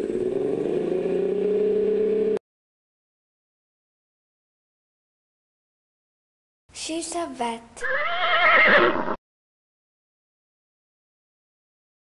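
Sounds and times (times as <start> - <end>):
horse whinnying: 7.8 - 9.2.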